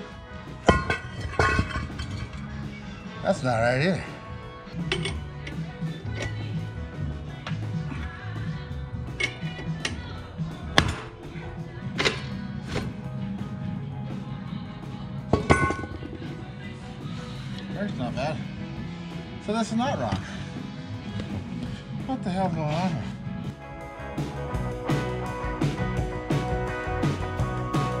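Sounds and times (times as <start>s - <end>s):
background music with bass line: 0.0s - 28.0s
metallic clinks and knocks: 0.6s - 2.5s, 4.8s - 5.6s, 9.2s - 9.9s, 15.4s - 16.0s.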